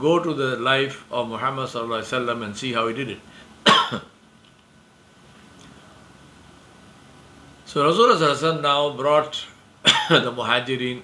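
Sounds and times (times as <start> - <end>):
man coughing: 3.6 - 4.2, 9.8 - 10.3.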